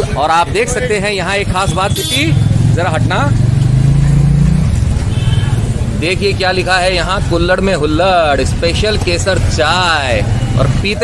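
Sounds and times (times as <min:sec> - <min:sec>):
vehicle engine running: 0:00.9 - 0:10.9.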